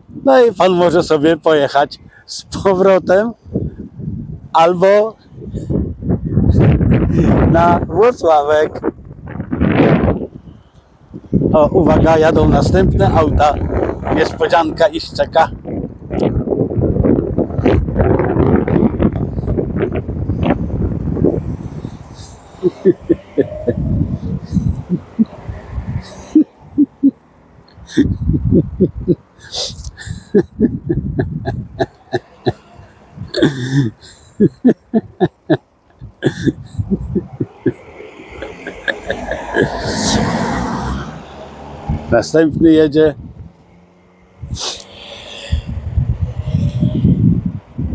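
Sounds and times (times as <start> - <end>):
wind buffeting microphone: 1.8 - 43.6, 44.2 - 47.9
cars driving: 6.6 - 47.8
man laughing: 22.2 - 40.6
car driving past: 37.7 - 42.4, 43.2 - 46.8.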